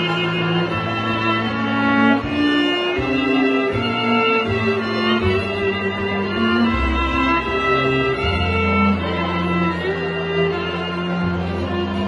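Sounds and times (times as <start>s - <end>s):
bowed violin notes: 0.0s - 12.0s
low cello line: 0.0s - 12.0s.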